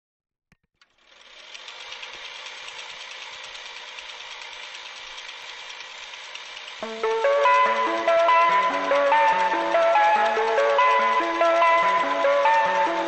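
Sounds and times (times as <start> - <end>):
fast light ticking: 1.5 - 13.0.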